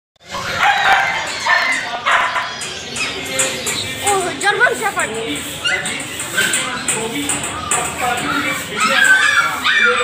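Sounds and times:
dogs barking: 0.2 - 10.0
people talking: 0.2 - 10.0.

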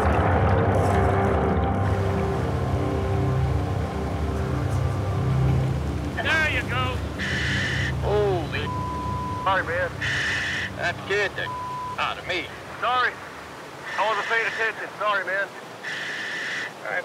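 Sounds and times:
dramatic background music: 0.0 - 13.5
whitewater rushing: 1.8 - 17.0
distorted voice bursts: 13.8 - 17.0.

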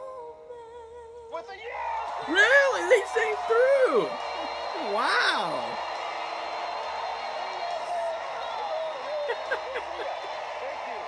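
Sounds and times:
audience applauding: 1.7 - 11.0.

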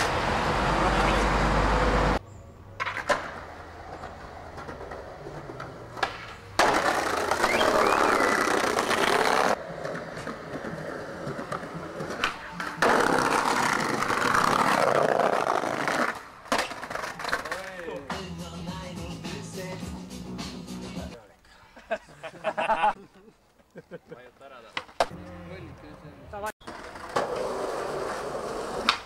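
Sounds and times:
skateboard rolling on concrete: 0.0 - 21.2, 24.0 - 29.0
skateboard clacks: 2.8 - 18.1, 26.7 - 29.0.

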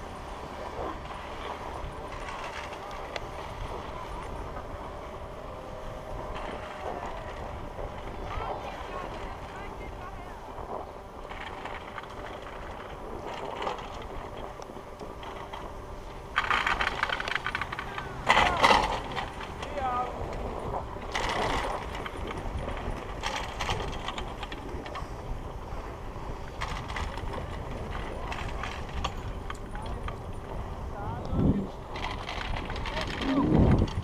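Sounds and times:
skis scraping over snow: 0.0 - 34.0.

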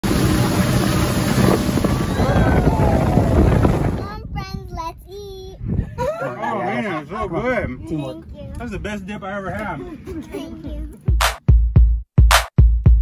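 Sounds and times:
rushing water: 0.0 - 4.0
motorboat engine: 0.0 - 4.1
wind buffeting microphone: 0.1 - 6.2
child's voice: 3.8 - 5.7, 8.0 - 8.6, 10.1 - 11.1.

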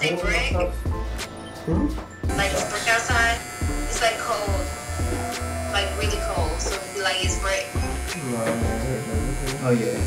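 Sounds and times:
people talking: 1.7 - 4.7, 5.8 - 10.0
electric hair clippers buzzing: 2.3 - 10.0.

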